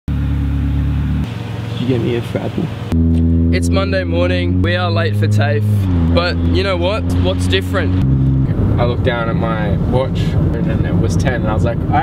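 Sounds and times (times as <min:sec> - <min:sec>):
car engine hum from inside: 0:00.1 - 0:12.0.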